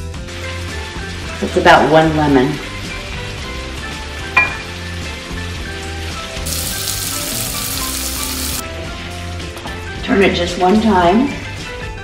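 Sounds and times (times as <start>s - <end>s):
chicken sizzling in frying pan: 0.1s - 8.7s.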